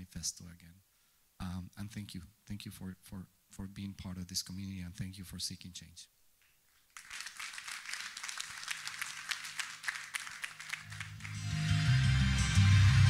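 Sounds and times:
light applause: 0:07.0 - 0:12.0
soundtrack music with deep bass: 0:11.2 - 0:13.0.

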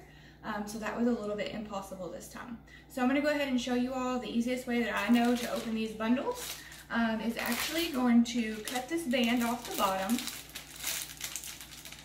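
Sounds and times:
plastic sleeve crinkling: 0:04.8 - 0:12.0.

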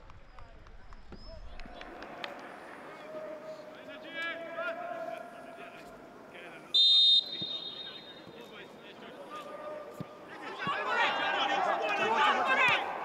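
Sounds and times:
players calling out: 0:06.6 - 0:13.0
referee's whistle blast: 0:06.8 - 0:08.5.

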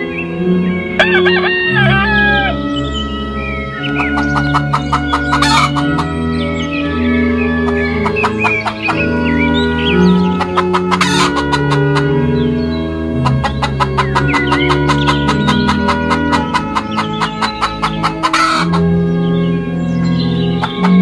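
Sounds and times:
chicks peeping: 0:00.0 - 0:21.0
music with slow low notes: 0:00.0 - 0:21.0
hens clucking: 0:01.0 - 0:02.7, 0:03.8 - 0:06.2, 0:07.2 - 0:12.4, 0:13.2 - 0:19.0, 0:20.5 - 0:21.0.

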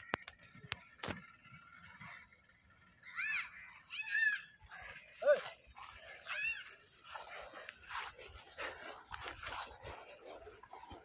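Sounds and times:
high-pitched animal calls: 0:01.5 - 0:05.5, 0:06.1 - 0:07.2.

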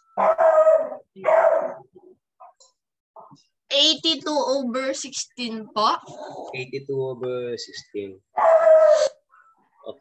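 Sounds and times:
dog howl-like barks: 0:00.2 - 0:01.8, 0:08.4 - 0:09.2.

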